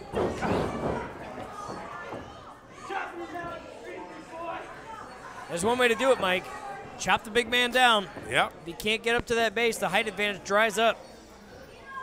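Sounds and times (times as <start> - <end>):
crowd chattering in a hall: 0.0 - 12.0.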